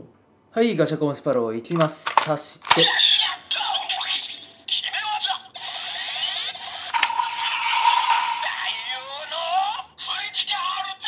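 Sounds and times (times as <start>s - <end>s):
toy click: 1.8s - 3.2s, 6.9s - 7.2s
toy electronic voice: 2.8s - 11.0s
rising electronic whine: 6.9s - 8.7s
steady electronic tone: 6.9s - 8.9s
synthesized standby effects: 6.9s - 8.9s.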